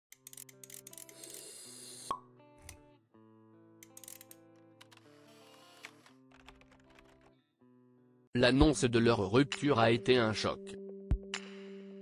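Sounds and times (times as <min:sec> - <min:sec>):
soft background music: 0:00.1 - 0:12.0.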